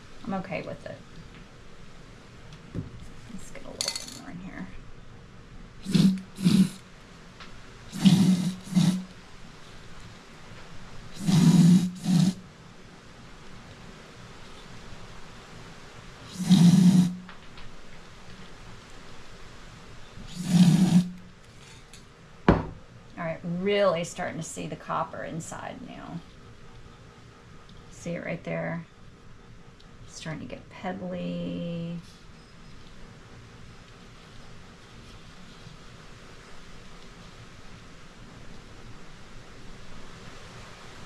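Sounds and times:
aerosol spray paint hissing: 5.8s - 6.8s, 7.9s - 9.0s.

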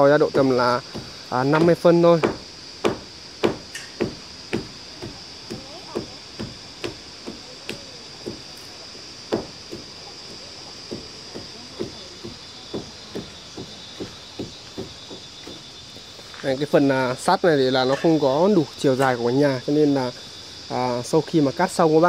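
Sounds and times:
insects chorus: 0.0s - 22.0s
hammer blows knocking: 0.3s - 8.5s.

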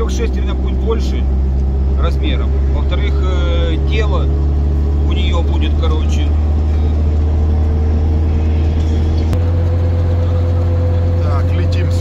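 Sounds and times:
thin steady whine: 0.0s - 12.0s
vehicle engine drone in cabin: 0.0s - 12.0s.

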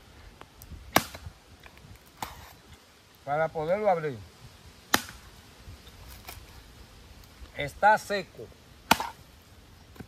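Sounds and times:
machete chopping coconut: 0.9s - 1.3s, 4.9s - 5.2s, 8.8s - 9.2s.

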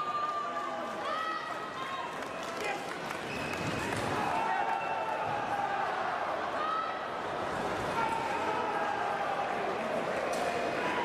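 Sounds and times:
sports hall crowd noise: 0.0s - 11.0s.

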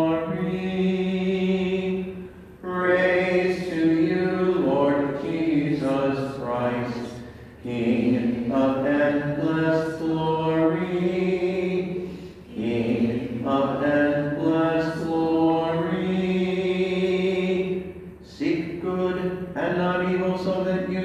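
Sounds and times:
man singing a slow chant: 0.0s - 21.0s.

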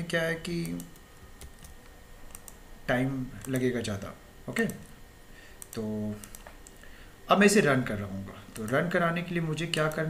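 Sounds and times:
low steady hum: 0.0s - 10.0s
faint computer clicks: 0.6s - 2.6s, 3.4s - 5.0s, 5.6s - 6.9s, 8.5s - 8.8s.

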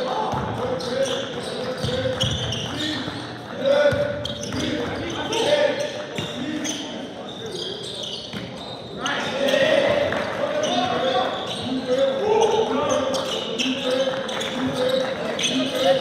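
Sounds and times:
players calling out: 0.0s - 16.0s
sneakers squeaking: 0.0s - 16.0s.

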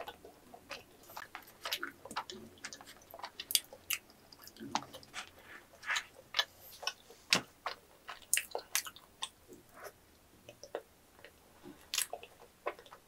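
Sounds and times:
mouth chewing wet clicks: 0.0s - 5.1s.

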